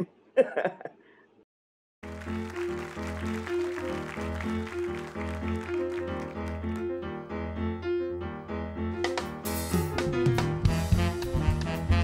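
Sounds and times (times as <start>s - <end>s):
keyboard chords: 2.0s - 12.0s.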